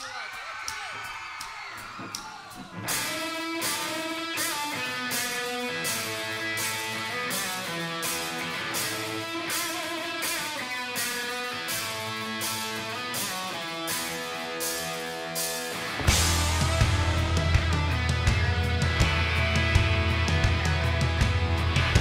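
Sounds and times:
live rock band playing: 2.7 - 22.0
electric guitar melody: 2.8 - 22.0.

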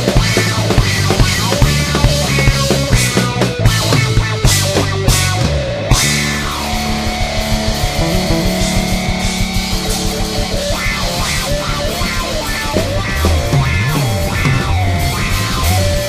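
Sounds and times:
bass guitar: 0.0 - 16.0
drum kit: 0.0 - 16.0
electric guitar lead: 0.0 - 16.0.

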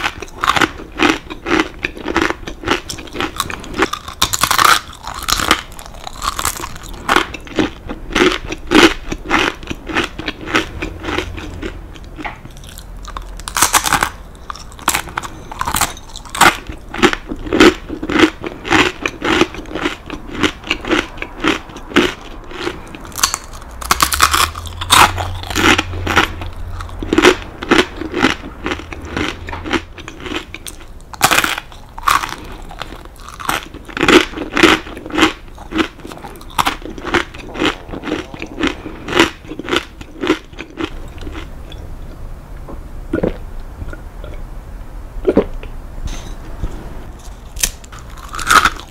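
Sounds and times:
crunching and chewing crackers: 0.0 - 41.8, 47.2 - 48.9.

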